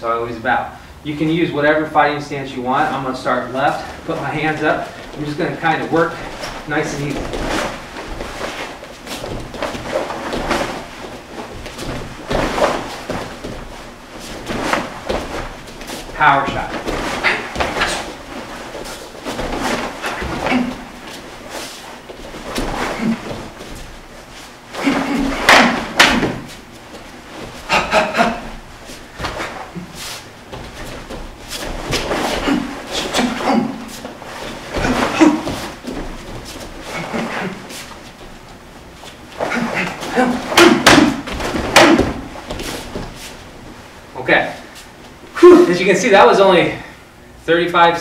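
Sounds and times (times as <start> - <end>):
bare feet on wooden floor: 3.8 - 43.8.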